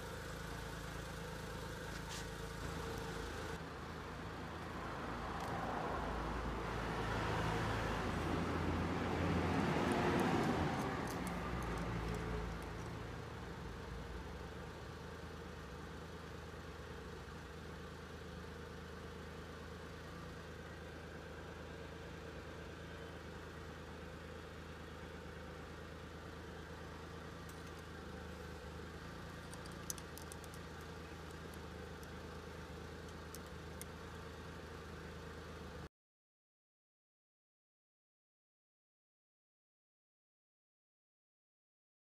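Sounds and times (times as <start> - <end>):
motorcycle engine idling: 0.0 - 4.5.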